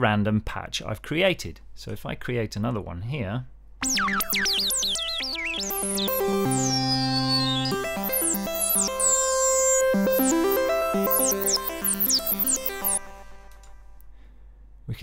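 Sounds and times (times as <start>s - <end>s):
synthesizer notes sliding down: 3.8s - 14.0s.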